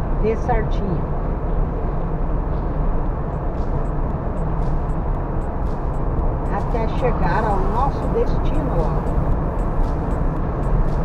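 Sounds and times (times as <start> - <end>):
car road noise from inside: 0.0 - 11.0.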